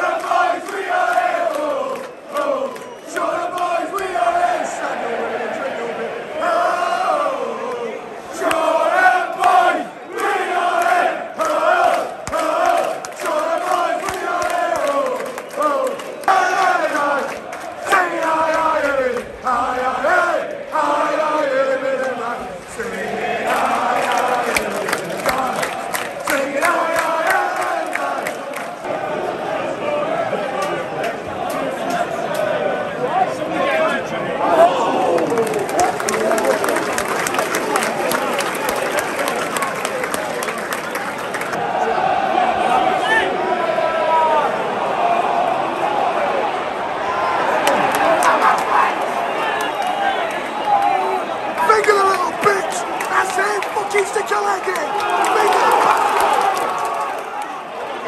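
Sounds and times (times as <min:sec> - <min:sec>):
crowd chanting: 0:00.0 - 0:58.0
sharp clapping in time: 0:24.0 - 0:28.7, 0:35.2 - 0:41.6.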